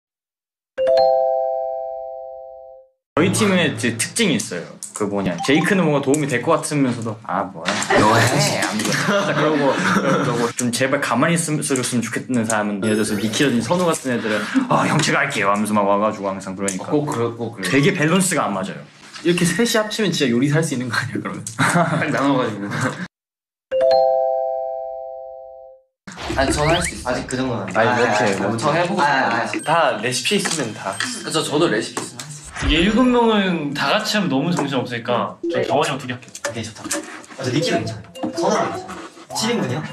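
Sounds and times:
bell-like three-tone chime: 0:05.4 - 0:06.0.

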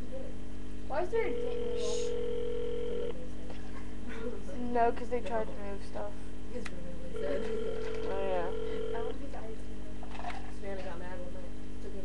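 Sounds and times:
telephone ringback tone: 0:01.2 - 0:03.2, 0:07.2 - 0:09.2.

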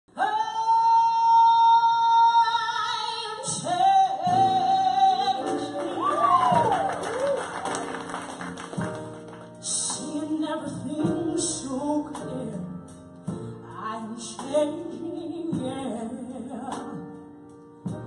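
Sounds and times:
woman singing: 0:00.1 - 0:06.8, 0:09.6 - 0:13.0, 0:13.7 - 0:17.2
piano bass and drum band: 0:00.2 - 0:18.0.

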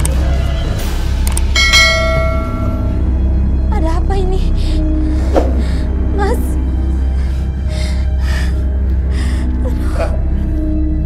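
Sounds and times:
low music drone: 0:00.0 - 0:11.0
bell-like metallic strike: 0:01.5 - 0:03.1.

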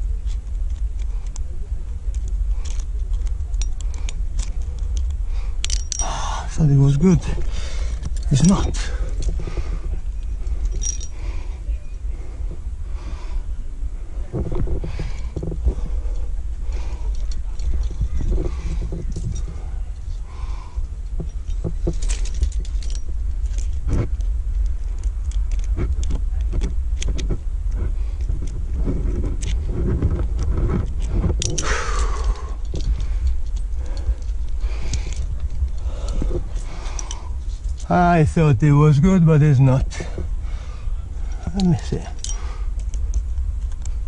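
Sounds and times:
metal climbing gear clinking: 0:00.0 - 0:13.5, 0:14.2 - 0:44.0
steady low rumble: 0:00.0 - 0:44.0.

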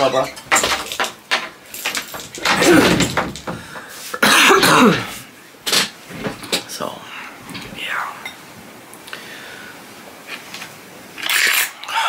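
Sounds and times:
woman coughing: 0:04.2 - 0:05.1.

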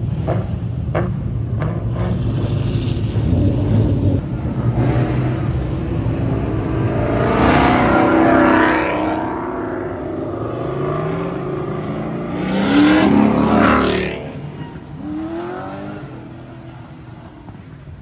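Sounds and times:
cars accelerating past: 0:00.0 - 0:17.8.

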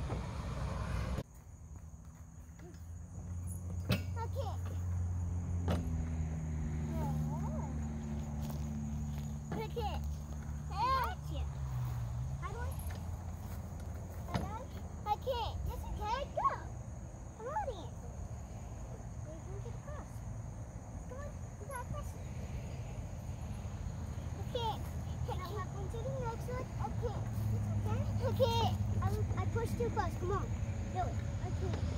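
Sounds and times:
low outdoor rumble: 0:00.0 - 0:31.9
young children calling and squealing: 0:06.7 - 0:31.9.

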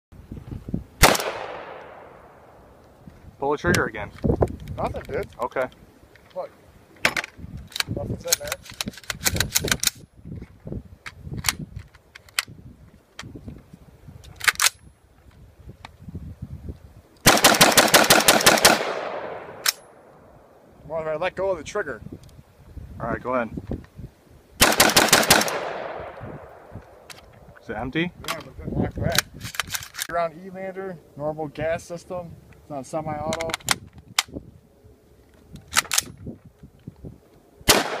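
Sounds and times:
gunshot with long echo: 0:01.0 - 0:02.6, 0:17.3 - 0:19.6, 0:24.6 - 0:26.7, 0:37.7 - 0:38.0
rifle firing rapid burst: 0:17.3 - 0:19.4, 0:24.6 - 0:25.9.

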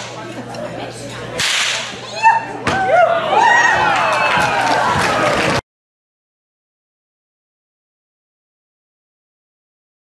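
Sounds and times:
whip cracking with echo: 0:01.4 - 0:01.9.

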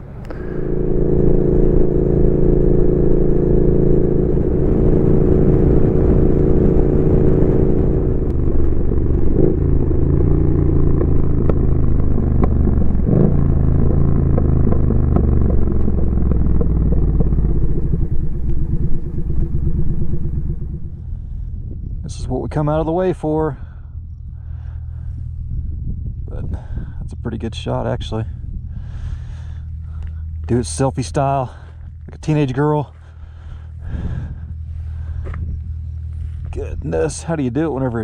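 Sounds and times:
motorcycle engine cruising: 0:00.0 - 0:38.0.

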